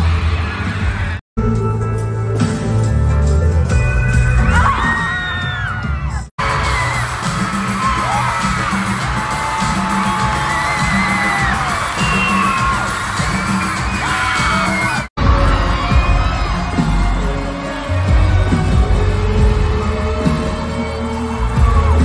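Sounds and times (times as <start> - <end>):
crowd screaming and cheering: 0.0 - 1.2, 4.4 - 22.0
live pop music with heavy bass: 0.0 - 22.0.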